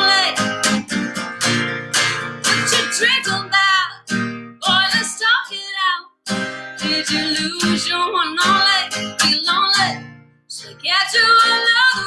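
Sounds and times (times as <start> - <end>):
woman singing country song: 0.0 - 1.1, 2.4 - 12.0
strummed acoustic guitar: 0.0 - 12.0.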